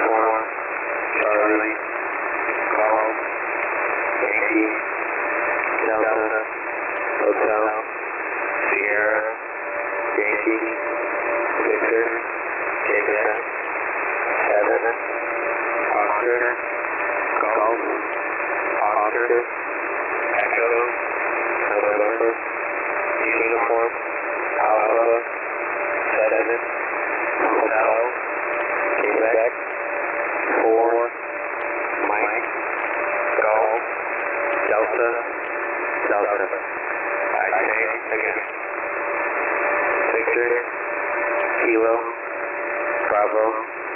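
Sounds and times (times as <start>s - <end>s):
faint voice speaking over radio: 0.0s - 1.9s, 2.5s - 3.3s, 4.1s - 4.8s, 5.5s - 6.5s, 7.1s - 7.9s, 8.6s - 9.4s, 10.0s - 13.5s, 14.2s - 15.1s, 15.8s - 19.5s, 20.1s - 21.0s, 21.6s - 25.3s, 26.0s - 29.7s, 30.4s - 35.4s, 36.0s - 39.1s, 39.8s - 40.7s, 41.4s - 42.4s, 43.0s - 43.7s
radio static hiss: 0.0s - 43.9s.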